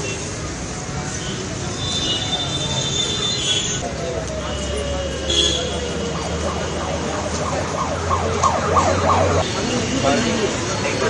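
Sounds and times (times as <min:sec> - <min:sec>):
warbling siren: 0:04.2 - 0:09.4.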